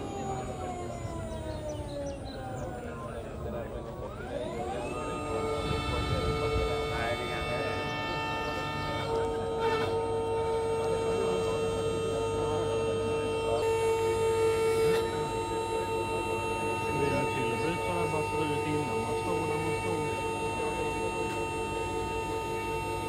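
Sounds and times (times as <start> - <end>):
electric motor whining: 0.0 - 23.0.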